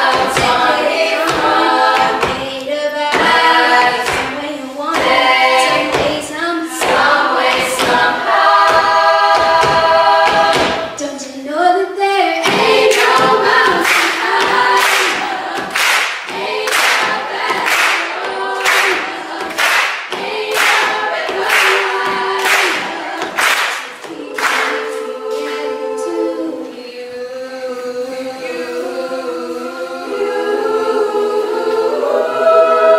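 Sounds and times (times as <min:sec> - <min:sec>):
a cappella choir singing: 0:00.0 - 0:32.9
sharp rhythmic hits: 0:03.1 - 0:06.2, 0:06.8 - 0:11.0, 0:12.4 - 0:25.7.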